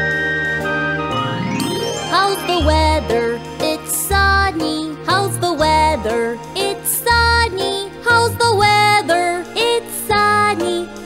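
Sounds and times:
children's music: 0:00.0 - 0:11.0
cartoon transition jingle: 0:01.0 - 0:03.5.

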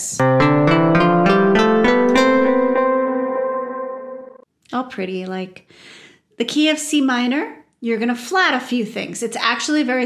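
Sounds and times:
keyboard notes and chord: 0:00.0 - 0:04.4.

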